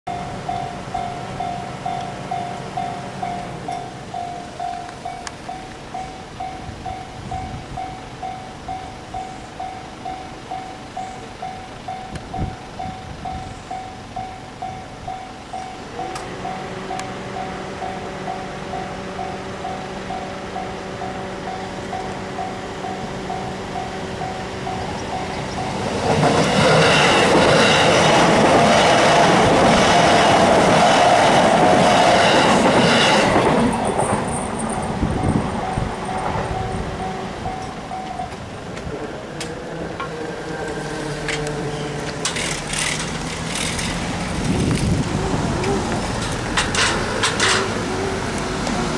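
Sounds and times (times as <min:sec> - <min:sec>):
level-crossing warning bell: 0:00.1 - 0:48.9
train passing loudly: 0:00.1 - 0:48.9.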